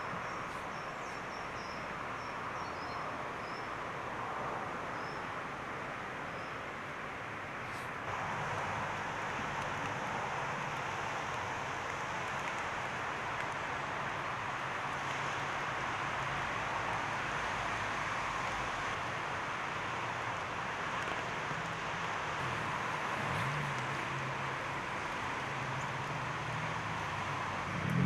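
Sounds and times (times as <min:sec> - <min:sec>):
steady outdoor rush: 0:00.0 - 0:28.0.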